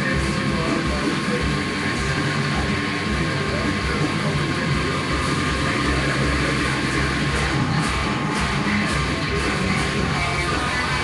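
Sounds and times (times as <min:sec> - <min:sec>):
distorted electric guitar riff: 0:00.0 - 0:11.0.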